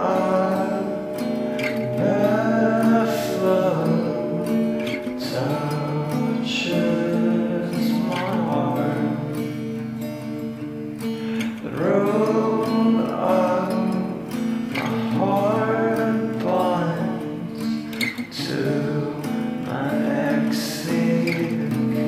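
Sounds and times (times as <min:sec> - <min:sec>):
person singing: 0:00.0 - 0:09.8, 0:11.3 - 0:22.0
strummed acoustic guitar: 0:00.0 - 0:22.0.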